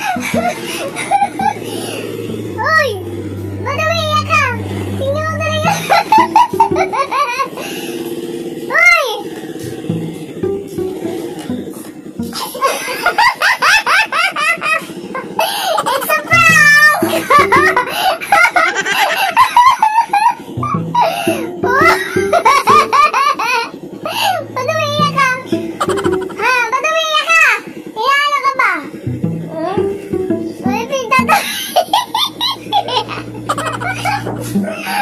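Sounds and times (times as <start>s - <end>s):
high-pitched giggling laughter: 0.0s - 2.0s, 3.7s - 7.6s, 12.3s - 26.5s, 31.2s - 35.0s
steady low hum: 0.0s - 35.0s.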